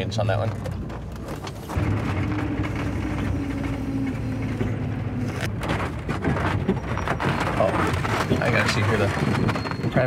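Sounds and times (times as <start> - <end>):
tyres rumbling on wet road: 0.0 - 10.0
low engine drone: 1.7 - 6.0.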